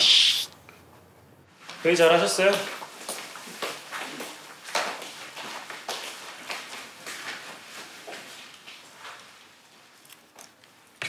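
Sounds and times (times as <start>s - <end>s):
footsteps on hard floor: 2.4s - 9.3s.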